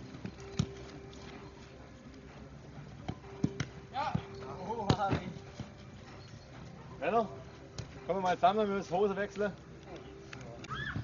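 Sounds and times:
football being kicked: 3.0 - 5.7.

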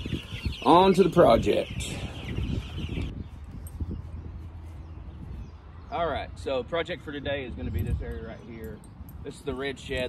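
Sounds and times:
baby chicks peeping: 0.0 - 6.1
wind rumble on microphone: 0.0 - 10.0.

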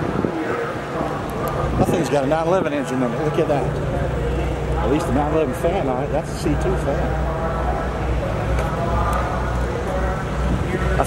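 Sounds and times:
indistinct voices: 0.0 - 11.0
low engine drone: 0.0 - 11.0.

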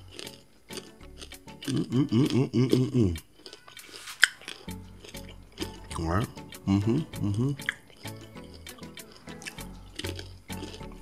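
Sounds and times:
closed-mouth humming while chewing: 0.0 - 11.0
crunch of biting candy: 0.0 - 11.0.

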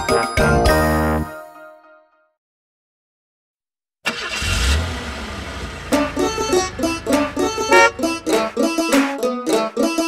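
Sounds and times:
cartoon vehicle engine rumble: 4.1 - 9.3
music with plucked notes: 5.9 - 10.0.

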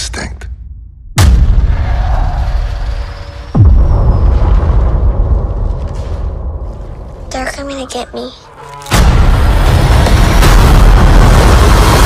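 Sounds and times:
deep cinematic boom hits: 0.6 - 7.2, 8.9 - 12.0.

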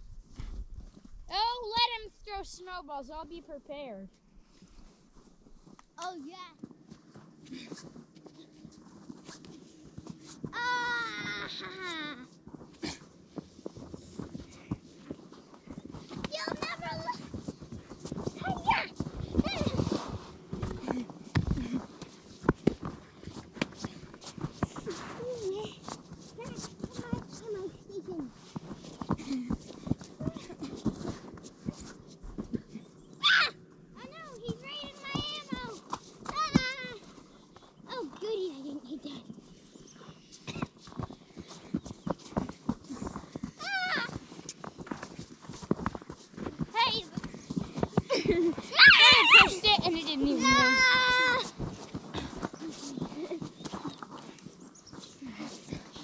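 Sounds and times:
footsteps crunching on snowy ice: 40.0 - 56.0
children calling out: 48.6 - 51.5.

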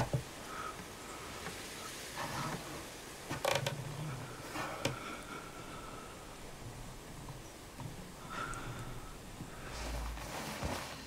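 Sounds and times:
short creaks: 2.2 - 11.0.

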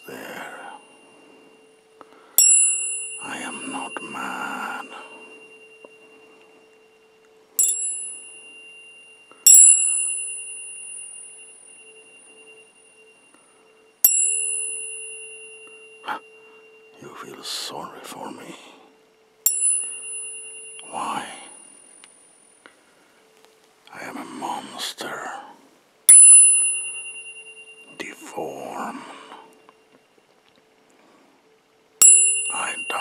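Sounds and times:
tuning forks pinging: 0.0 - 25.4, 26.1 - 30.4, 31.0 - 33.0
steady low tone: 0.0 - 33.0.

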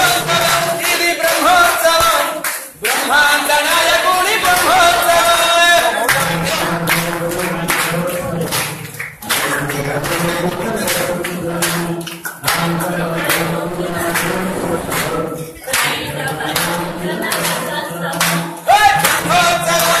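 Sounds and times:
men singing a chant: 0.0 - 20.0
rhythmic handclaps: 0.0 - 20.0.

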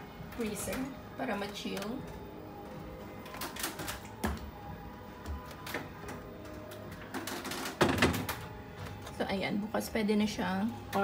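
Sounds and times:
background music: 0.0 - 11.0
plastic containers clicking and knocking: 5.3 - 9.2.

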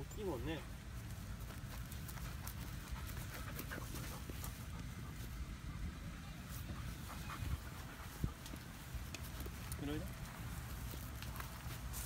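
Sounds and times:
dog panting: 1.7 - 5.9, 6.6 - 9.8.

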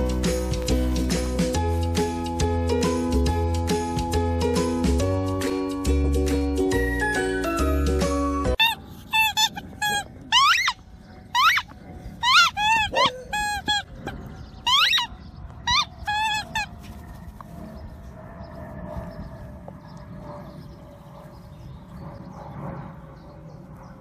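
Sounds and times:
upbeat background music: 0.0 - 8.6
puppies yipping and whining: 8.5 - 17.2.

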